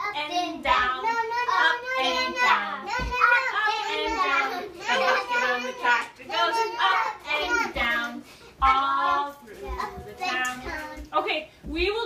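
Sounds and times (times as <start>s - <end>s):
children's voices: 0.0s - 8.2s, 9.1s - 11.2s.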